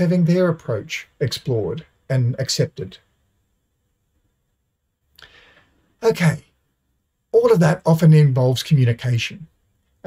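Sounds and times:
short intake of breath: 5.2s - 5.8s.

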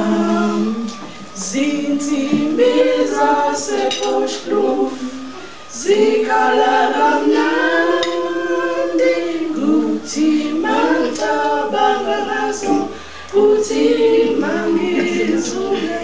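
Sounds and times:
group singing a cappella: 0.0s - 16.0s.

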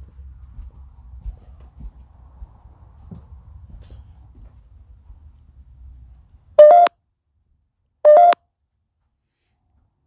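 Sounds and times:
electronic rising chirp beeps: 6.6s - 6.9s, 8.1s - 8.4s.

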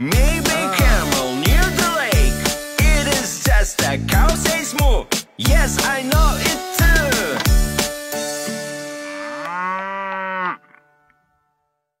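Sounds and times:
children's song: 0.0s - 7.6s
cow mooing: 9.0s - 10.8s.

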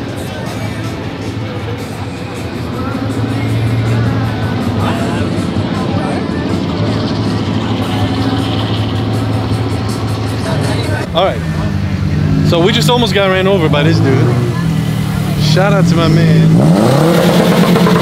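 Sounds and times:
car engine running: 0.0s - 18.0s.

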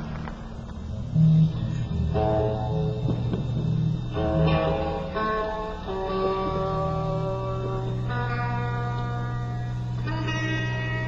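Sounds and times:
electric guitar notes and chords: 0.0s - 11.0s
steady low drone: 0.0s - 11.0s.

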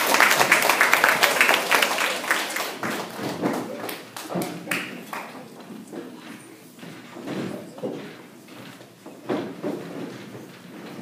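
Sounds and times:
audience applause: 0.0s - 5.5s.

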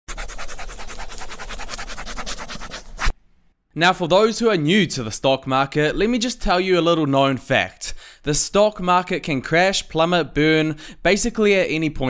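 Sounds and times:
marker pen scratching on paper: 0.1s - 3.2s.

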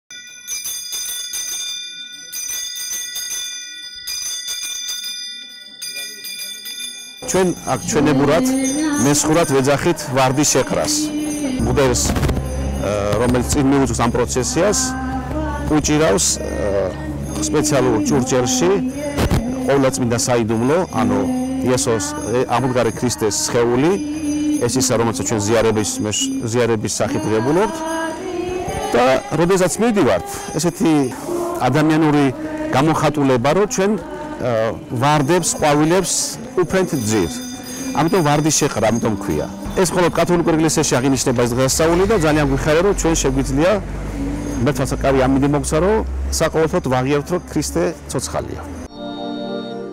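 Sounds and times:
hand bell ringing: 0.1s - 49.0s
man speaking in drawn-out syllables: 7.2s - 12.2s, 19.6s - 24.0s, 38.0s - 43.8s.

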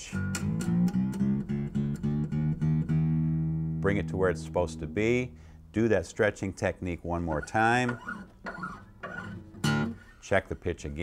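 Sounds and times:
plucked guitar note: 0.0s - 5.6s
guitar string handling: 6.5s - 10.1s.

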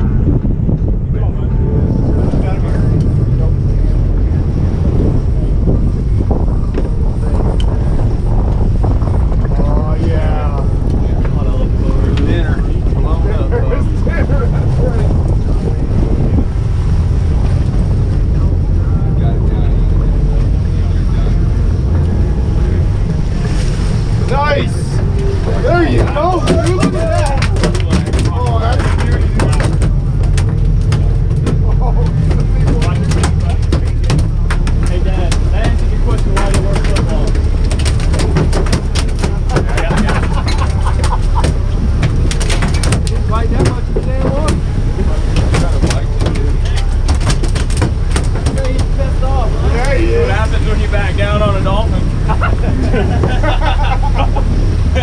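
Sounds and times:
boat engines rumbling: 0.0s - 55.0s
wind on microphone: 0.0s - 55.0s
voices calling out: 24.0s - 55.0s.

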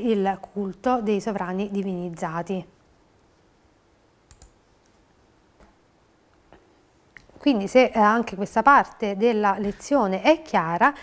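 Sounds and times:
sharp clicks: 4.3s - 4.6s.

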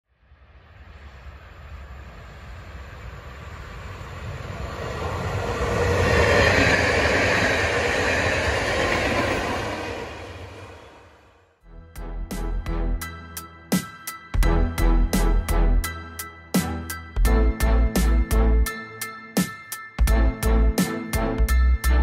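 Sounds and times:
train wheels rumbling on track: 1.6s - 11.2s.

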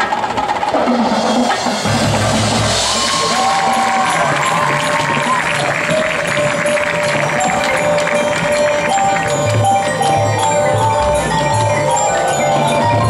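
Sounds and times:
marching band playing: 0.0s - 13.0s.

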